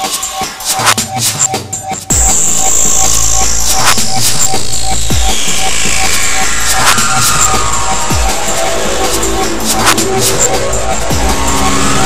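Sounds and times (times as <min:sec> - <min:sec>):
regular ticking pulse: 0:00.1 - 0:12.0
deep electronic sweep: 0:02.2 - 0:12.0
higher tone gliding downward: 0:05.2 - 0:12.0.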